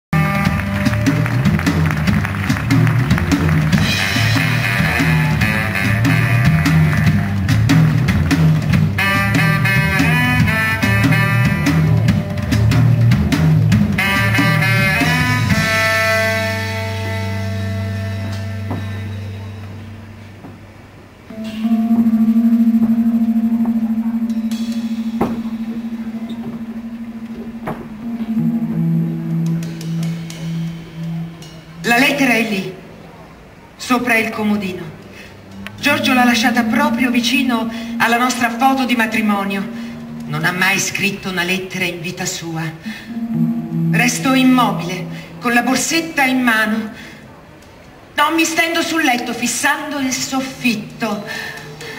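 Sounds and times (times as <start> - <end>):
baritone saxophone: 0.2 - 8.0, 8.9 - 20.4, 21.3 - 32.2, 35.5 - 41.8
drum kit: 0.2 - 19.5, 21.3 - 32.3
guitar: 21.3 - 32.6, 35.5 - 41.9, 42.8 - 46.0.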